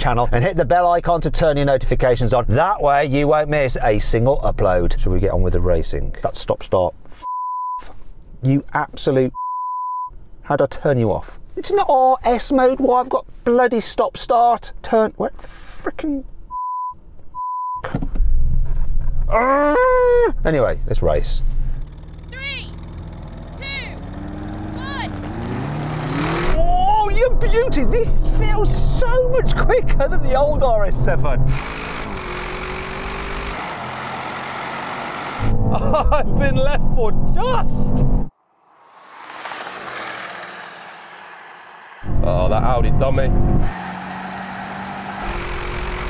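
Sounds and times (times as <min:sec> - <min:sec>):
man howling: 0:19.3 - 0:20.4
in-car engine sound: 0:20.7 - 0:46.0
racing cars rushing past: 0:21.8 - 0:26.6, 0:38.3 - 0:46.0.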